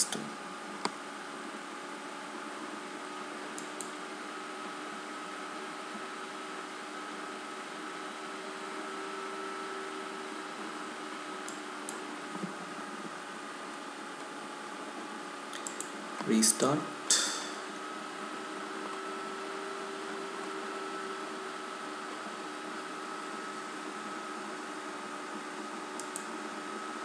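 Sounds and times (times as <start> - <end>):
computer fan hum: 0.0 - 27.0
mouse clicks: 15.5 - 16.0, 26.0 - 26.3.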